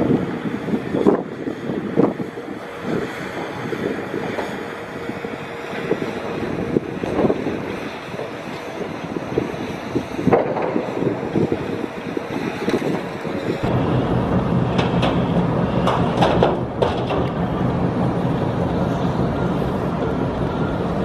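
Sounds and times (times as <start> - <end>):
deep rumble: 0.0 - 21.0
wind buffeting microphone: 0.0 - 21.0.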